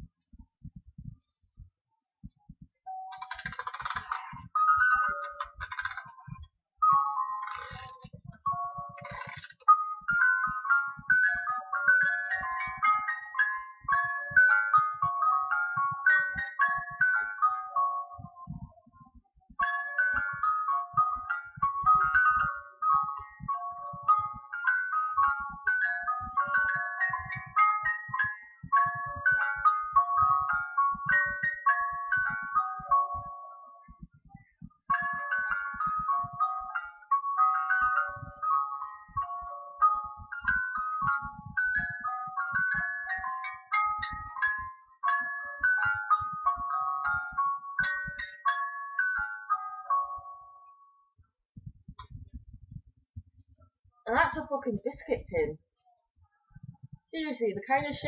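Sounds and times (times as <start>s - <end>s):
music box chiming tune: 3.2s - 6.1s, 6.8s - 18.6s, 19.6s - 34.0s, 34.9s - 51.1s.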